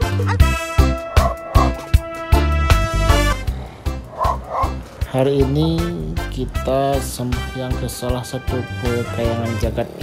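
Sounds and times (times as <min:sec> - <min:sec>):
upbeat background music: 0:00.0 - 0:10.0
bark-like yelps: 0:00.8 - 0:02.0, 0:04.0 - 0:04.8.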